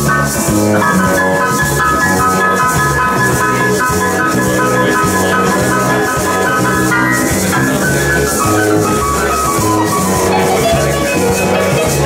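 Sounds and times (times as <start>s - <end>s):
electric bass line: 0.0s - 12.0s
hissing percussion rhythm: 0.0s - 12.0s
keyboard notes: 0.0s - 12.0s.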